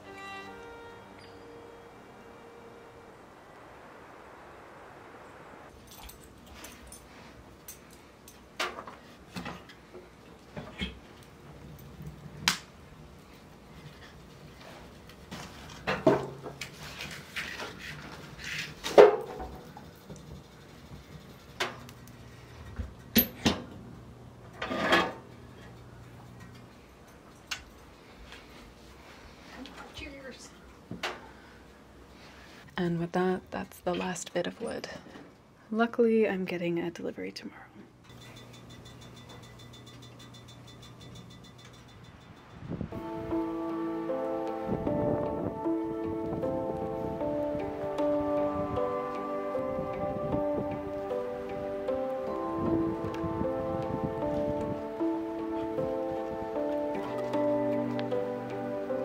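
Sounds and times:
wind: 0.0s - 59.0s.

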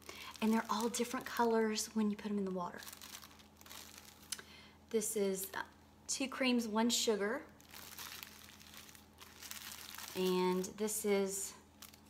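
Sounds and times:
plastic bag crinkling: 0.0s - 4.4s, 7.5s - 11.1s, 11.7s - 12.0s.

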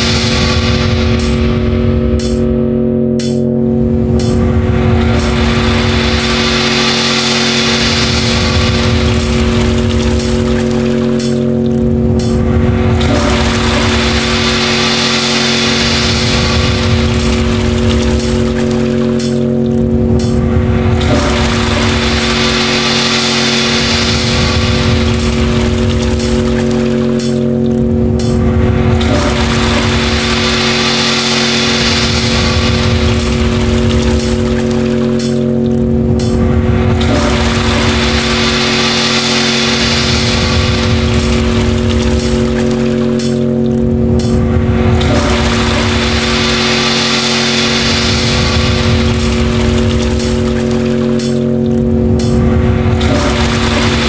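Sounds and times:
many-toned drone: 0.0s - 54.0s
rumbling low pulse: 0.0s - 54.0s.

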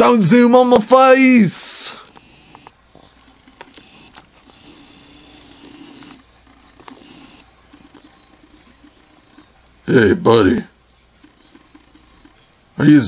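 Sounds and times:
faint clicks: 2.0s - 9.8s, 10.8s - 12.6s.

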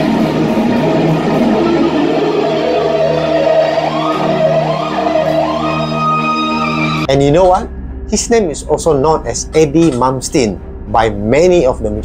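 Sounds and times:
band playing: 0.0s - 10.0s
electric guitar lead with bends: 0.0s - 10.0s.

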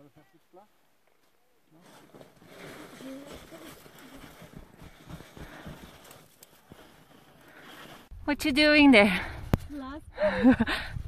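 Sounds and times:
crunching of packed snow: 1.2s - 8.1s.

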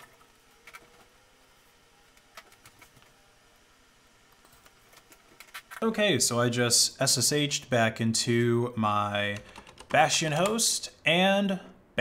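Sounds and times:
faint room hiss: 0.0s - 12.0s.

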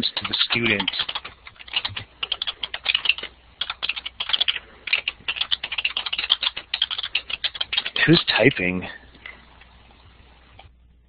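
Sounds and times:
typing on computer keyboard: 0.0s - 8.3s.

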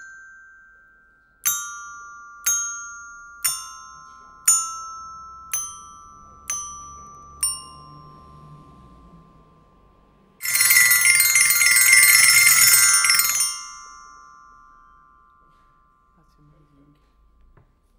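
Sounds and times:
glockenspiel bars ringing: 0.0s - 8.6s, 10.4s - 16.5s
rapid glockenspiel flurry: 0.0s - 8.6s, 10.4s - 16.4s.

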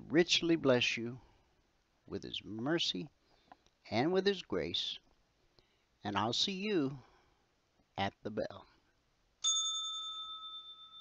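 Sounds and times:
bell ringing high tone: 9.4s - 11.0s.

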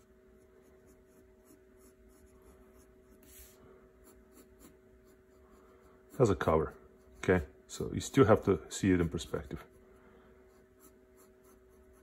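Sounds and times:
pencil scratching on paper: 0.0s - 7.5s, 10.4s - 12.0s
faint steady hum: 0.0s - 12.0s.

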